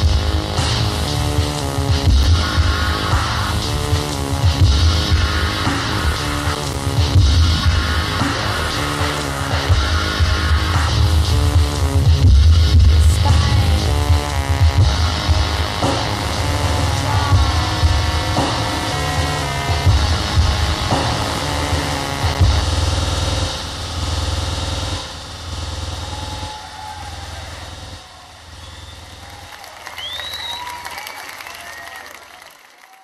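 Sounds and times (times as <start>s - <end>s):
live concert music with heavy bass: 0.0s - 32.6s
crowd noise: 0.0s - 33.0s.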